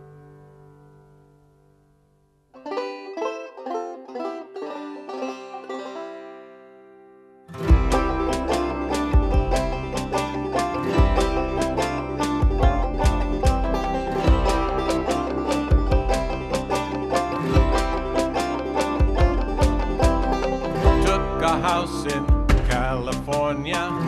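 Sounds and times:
plucked-string notes: 0.0s - 24.0s
background song: 7.6s - 24.0s
band with steady drum beat: 7.7s - 24.0s.

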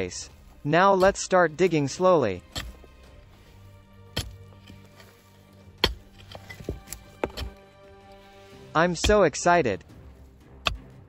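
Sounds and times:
background music: 0.0s - 11.0s
mattock striking stony soil: 0.3s - 11.0s.

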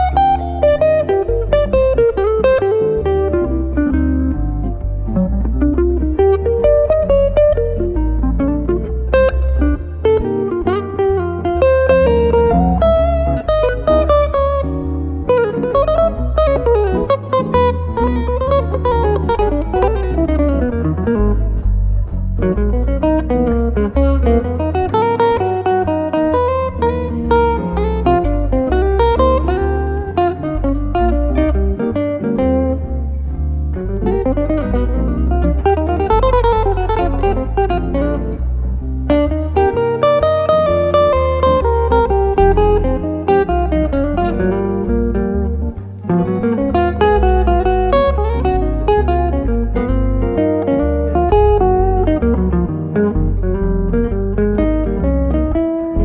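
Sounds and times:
jazz guitar duo playing: 0.0s - 56.0s.

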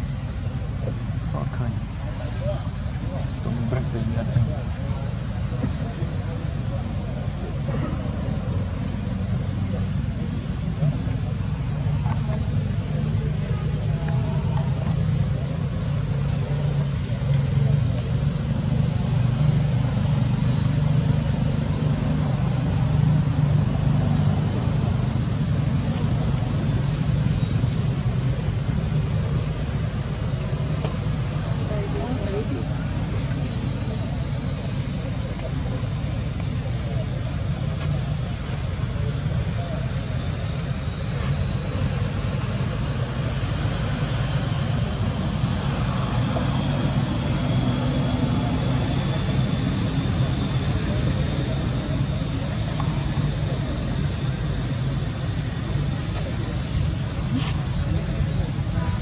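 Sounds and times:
low background rumble: 0.0s - 59.0s.

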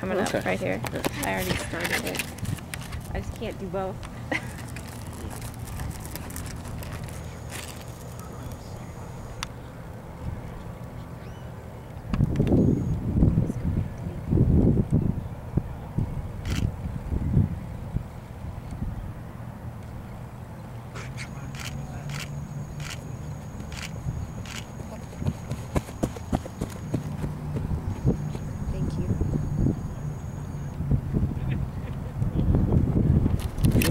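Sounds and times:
wind buffeting microphone: 0.0s - 7.3s, 12.1s - 19.2s, 23.7s - 33.9s.

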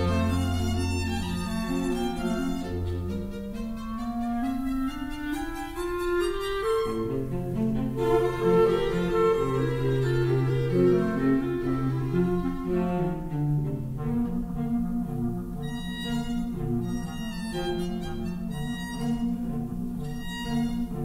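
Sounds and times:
cello holding long low notes: 0.0s - 21.0s
clarinet: 0.0s - 21.0s
violin: 0.0s - 21.0s.

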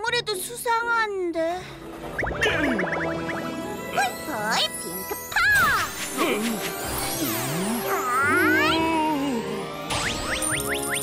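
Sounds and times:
background music: 0.0s - 11.0s
magic sparkle tinkling chime: 3.8s - 8.8s.

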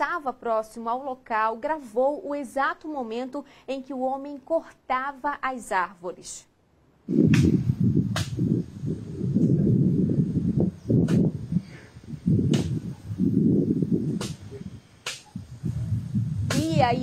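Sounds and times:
sharp wood cracks: 8.1s - 8.4s, 12.5s - 12.8s, 14.2s - 15.3s, 16.5s - 16.8s.

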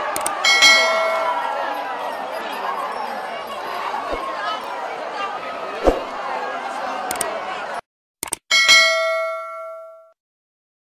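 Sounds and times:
notification bell chime: 8.5s - 10.2s.

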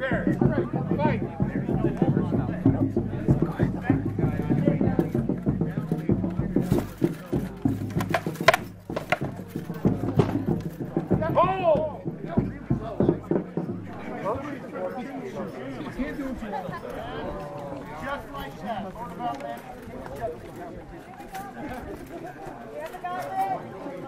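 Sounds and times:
voices: 0.0s - 24.0s
weapons striking shields and armour: 7.9s - 9.4s.

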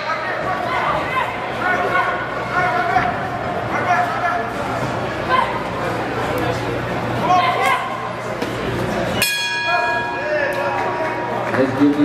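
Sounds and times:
spectators' voices: 0.0s - 12.0s
boxing ring bell: 9.2s - 10.6s.

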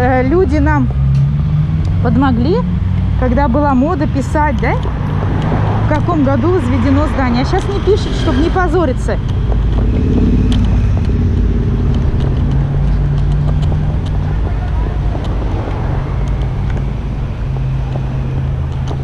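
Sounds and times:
road rumble: 0.0s - 19.0s
wind on microphone: 4.8s - 19.0s
steady low hum: 9.3s - 14.5s.

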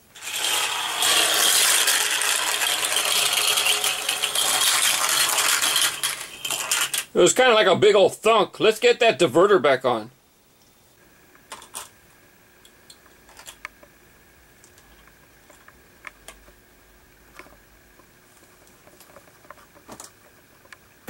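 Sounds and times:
plastic toy track clicks and taps: 0.2s - 7.1s.

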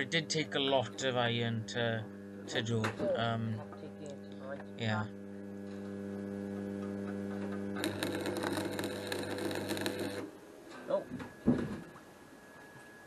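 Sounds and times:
arc welder humming: 0.0s - 11.8s
welding arc crackling: 3.4s - 10.4s.

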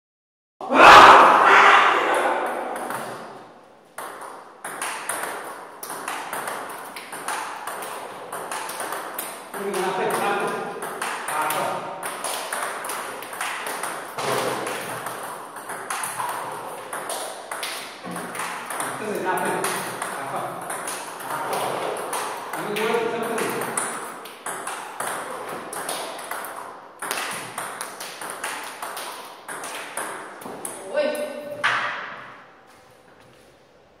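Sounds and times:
table tennis balls clicking: 2.5s - 30.9s.

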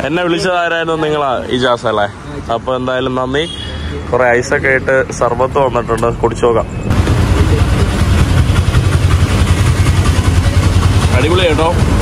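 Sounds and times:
vehicle engine idling: 6.9s - 12.0s.

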